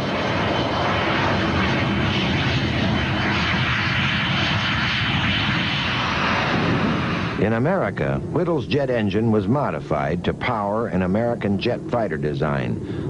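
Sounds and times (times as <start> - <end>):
aircraft engine drone: 0.0 - 13.0
low hum: 0.0 - 13.0.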